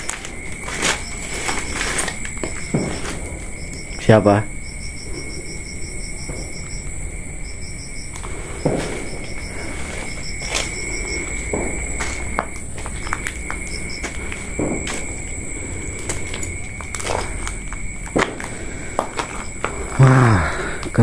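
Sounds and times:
footsteps crunching on dry leaves: 0.0 - 3.2, 8.2 - 19.8
crickets chirping: 0.0 - 21.0
high-pitched insect drone: 0.0 - 21.0.

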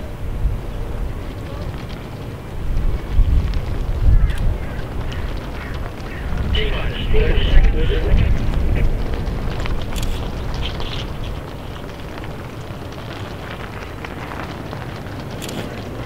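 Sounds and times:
faint distant voices: 0.0 - 16.0
wind buffeting microphone: 0.0 - 16.0.

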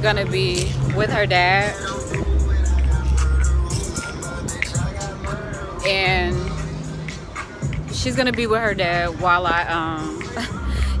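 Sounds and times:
music playing nearby: 0.0 - 11.0
traffic: 0.0 - 11.0.

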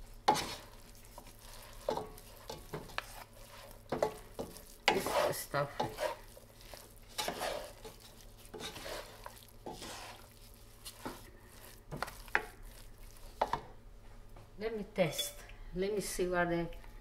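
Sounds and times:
wooden spoons scraping stuffing: 0.0 - 13.7.

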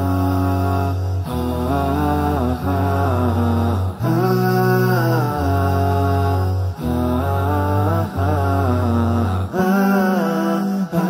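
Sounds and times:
layered voices singing long notes: 0.0 - 11.0.

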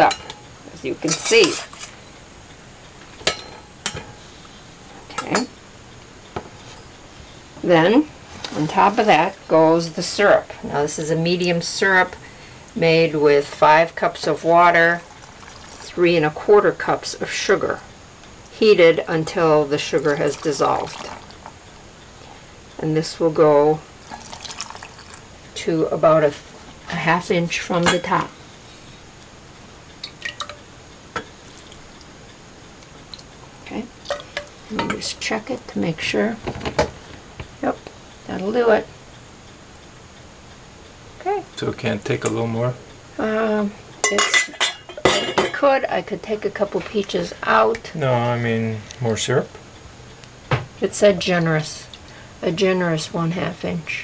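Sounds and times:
quiet background hiss: 0.0 - 54.0
syrup drips ticking in glass jar: 24.0 - 25.2, 30.0 - 30.6.

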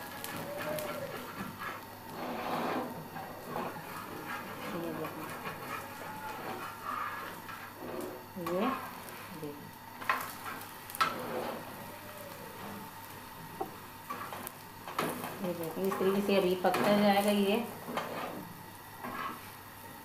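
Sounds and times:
batter sizzling on griddle: 0.0 - 20.0.

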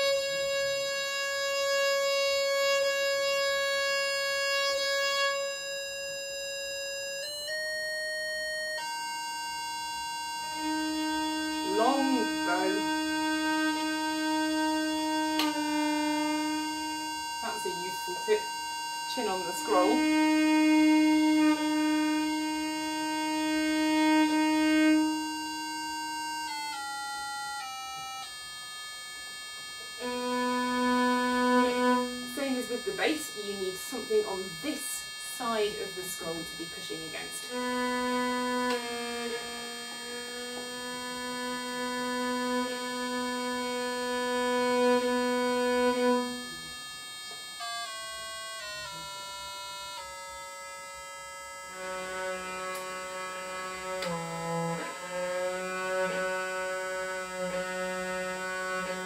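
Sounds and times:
viol bowed notes: 0.0 - 59.0.

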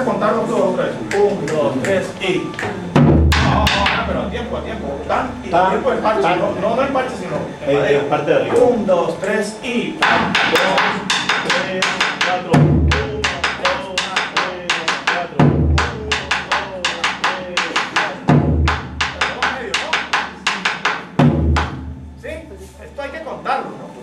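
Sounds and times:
deep drum stroke: 2.9 - 5.7, 10.0 - 23.0.

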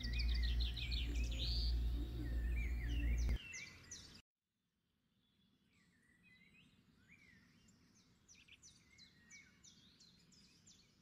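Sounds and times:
steady low hum: 0.0 - 3.4
birds chirping: 0.0 - 4.2.

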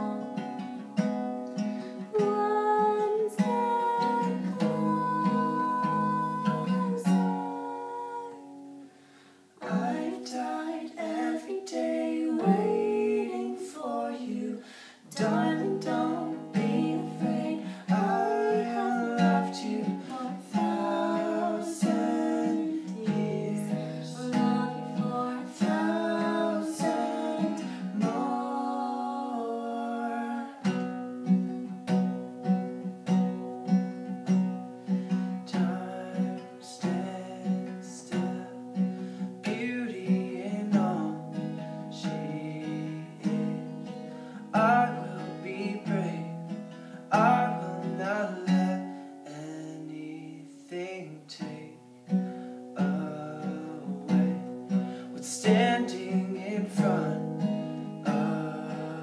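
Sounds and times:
acoustic guitar strumming: 0.0 - 59.0
man and woman singing duet: 1.8 - 8.8, 9.6 - 31.0, 35.5 - 51.8, 52.8 - 59.0.

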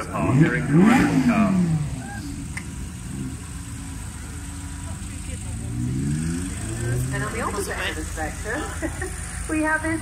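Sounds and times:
car engine running at low revs: 0.0 - 10.0.

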